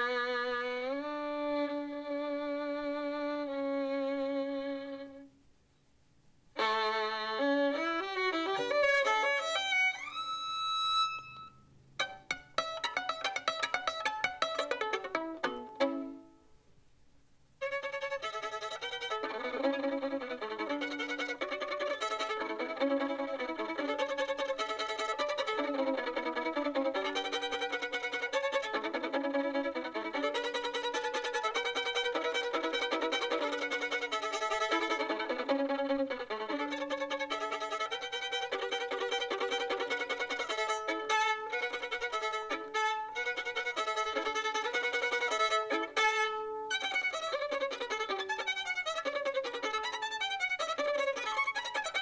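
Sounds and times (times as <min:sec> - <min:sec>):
violin bowed phrase: 0:00.0 - 0:05.3, 0:06.6 - 0:16.4, 0:17.6 - 0:52.0
violin pizzicato notes: 0:00.0 - 0:05.3, 0:06.6 - 0:16.4, 0:17.6 - 0:52.0.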